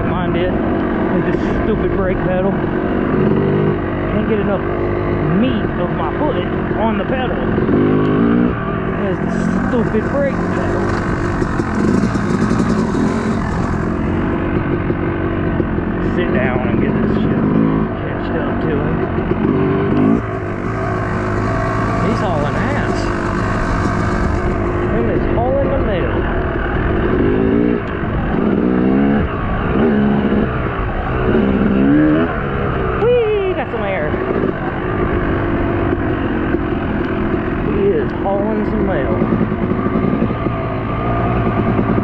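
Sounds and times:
dirt bike engine revving: 0:00.0 - 0:42.0.

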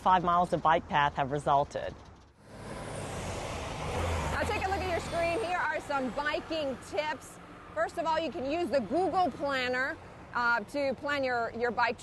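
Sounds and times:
vehicle passing on street: 0:02.3 - 0:10.4.

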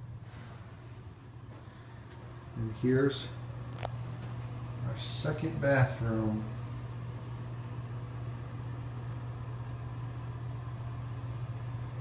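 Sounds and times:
ventilation fan hum: 0:00.0 - 0:12.0.

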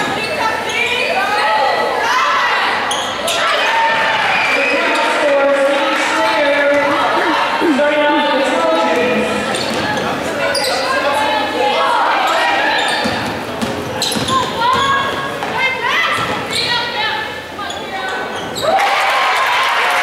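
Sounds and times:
sneakers squeaking: 0:00.0 - 0:01.4, 0:02.7 - 0:05.5, 0:06.6 - 0:11.4, 0:12.1 - 0:18.8
players and spectators voices: 0:00.0 - 0:20.0
basketball bouncing: 0:13.0 - 0:15.6.

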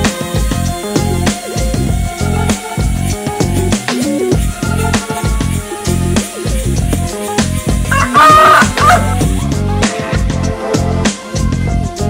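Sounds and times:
background music with beat: 0:00.0 - 0:12.0
rooster crowing: 0:07.9 - 0:09.2.

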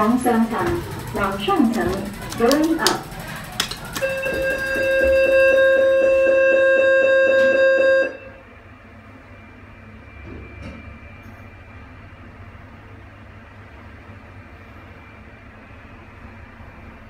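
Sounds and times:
lift car hum: 0:00.0 - 0:08.5
clicks: 0:01.6 - 0:05.4
lift door warning tone: 0:03.8 - 0:08.5.

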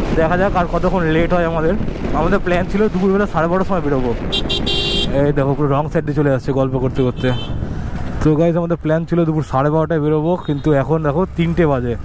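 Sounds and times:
man talking: 0:00.0 - 0:04.2, 0:05.0 - 0:07.5, 0:08.2 - 0:12.0
vehicle horn tooting: 0:04.3 - 0:05.1, 0:07.0 - 0:07.6.

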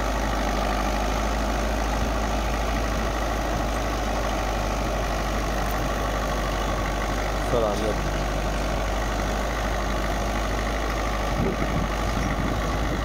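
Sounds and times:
tractor diesel engine running: 0:00.0 - 0:13.0.

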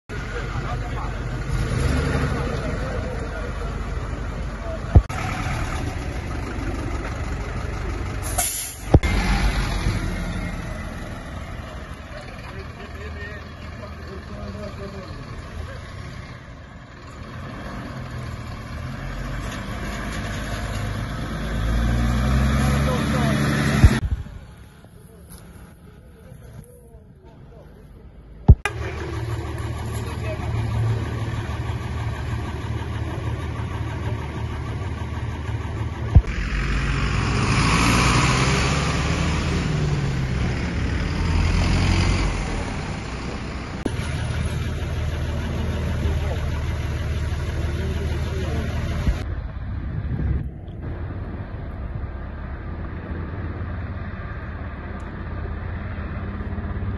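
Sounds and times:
vehicle passing with road noise: 0:00.1 - 0:56.9
engine idling low: 0:02.4 - 0:09.2, 0:10.6 - 0:17.4, 0:23.1 - 0:36.8, 0:42.4 - 0:56.9
engine note rising: 0:20.8 - 0:24.3, 0:28.5 - 0:56.9.

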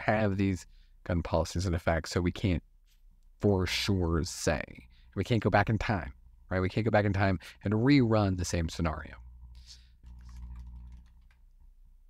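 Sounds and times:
faint low hum: 0:00.0 - 0:12.0
keyboard typing clicks: 0:10.0 - 0:11.5.

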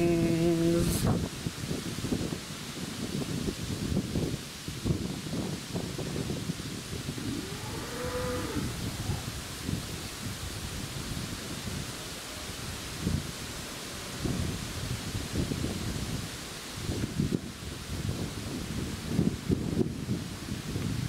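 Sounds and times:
wind buffeting microphone: 0:00.0 - 0:21.0
cow mooing: 0:07.2 - 0:09.3.

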